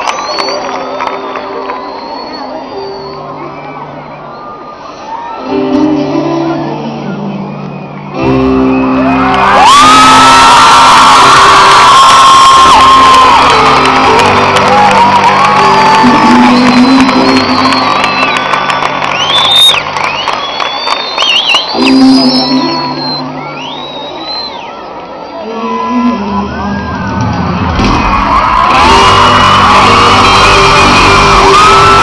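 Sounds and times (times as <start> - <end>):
crowd screaming and cheering: 0.0 - 32.0.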